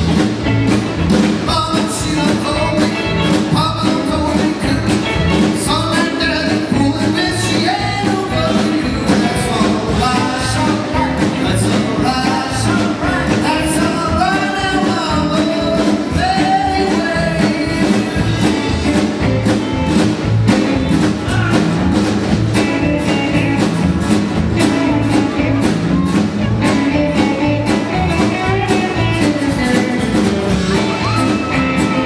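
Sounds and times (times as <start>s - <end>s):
rock and roll band playing: 0.0s - 32.0s
man singing: 1.2s - 19.2s.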